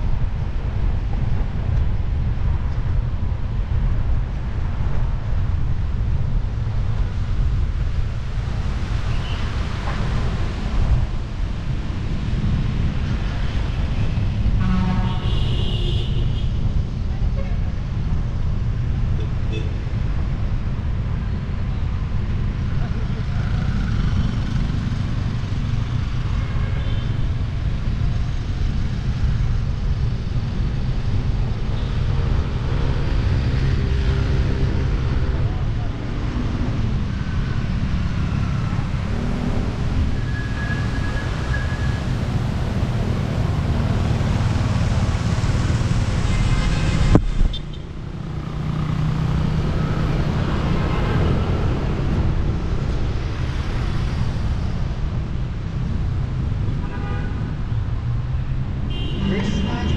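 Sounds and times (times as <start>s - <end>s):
cars and motorcycles passing: 0.0s - 59.9s
wind and road noise rumble: 0.0s - 59.9s.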